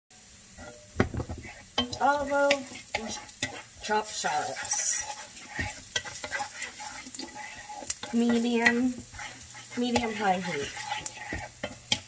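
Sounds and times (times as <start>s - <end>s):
shallots sizzling: 0.1s - 12.0s
wooden spoon stirring in frying pan: 0.2s - 12.0s
spoon knocking against pan: 0.6s - 3.6s.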